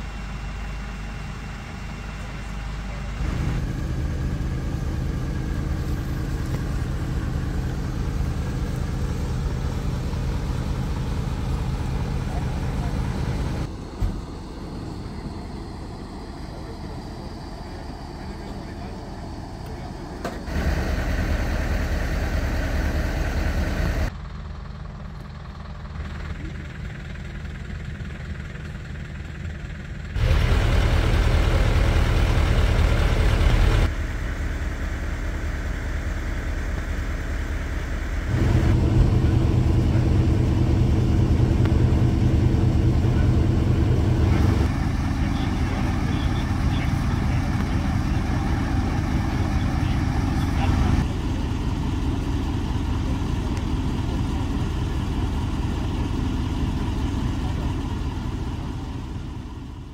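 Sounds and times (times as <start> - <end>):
vehicle engines idling: 0.0 - 59.9.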